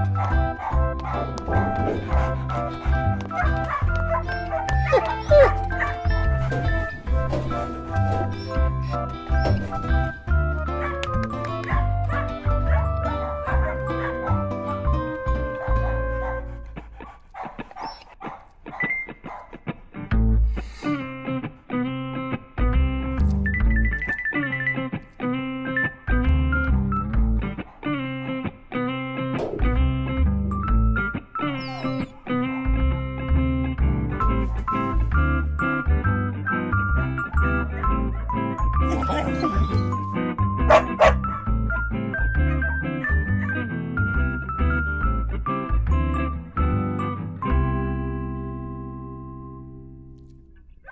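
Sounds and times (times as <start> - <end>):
background music with bass line: 0.0 - 17.2, 19.9 - 50.2
dog barking and yipping: 0.1 - 10.1, 10.7 - 19.6, 26.6 - 28.6, 31.4 - 33.2, 37.4 - 40.0, 40.6 - 43.6.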